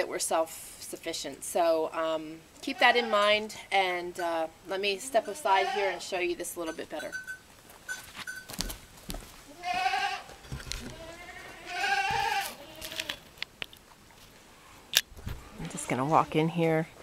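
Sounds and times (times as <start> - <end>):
goats bleating: 2.6 - 3.4, 4.9 - 6.1, 9.5 - 13.2.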